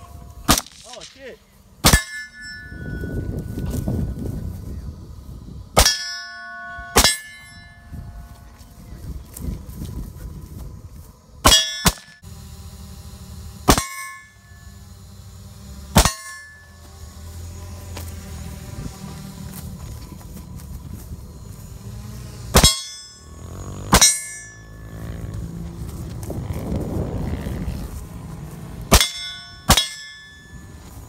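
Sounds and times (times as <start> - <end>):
metallic ring: 0.0 - 4.2, 5.8 - 8.4, 11.5 - 12.3, 13.6 - 17.6, 22.5 - 25.4, 28.9 - 31.0
rifle shots: 0.4 - 2.1, 28.9 - 30.2.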